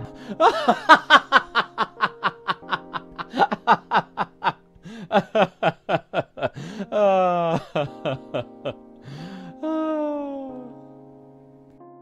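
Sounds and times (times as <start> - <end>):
background music: 0.0 - 12.0
rapid laughter: 0.3 - 8.5.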